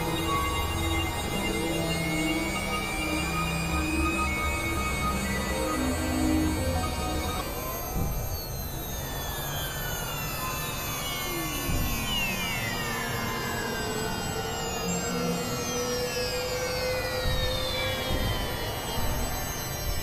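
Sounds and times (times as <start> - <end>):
synthesizer drone music: 0.0 - 8.7.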